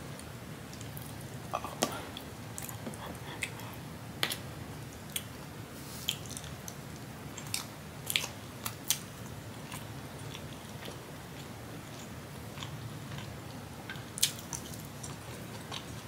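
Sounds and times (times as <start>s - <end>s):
mouth chewing food: 6.0s - 16.0s.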